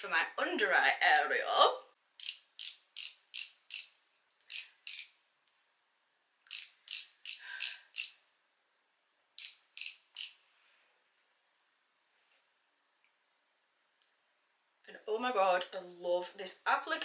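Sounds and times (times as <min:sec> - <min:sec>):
twist barrel ratchet clicks: 0:02.2 - 0:05.1, 0:06.5 - 0:08.2, 0:09.4 - 0:10.4.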